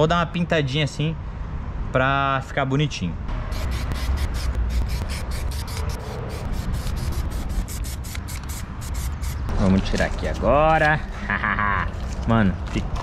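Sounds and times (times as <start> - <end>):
spray paint can hissing: 3.5 - 9.5.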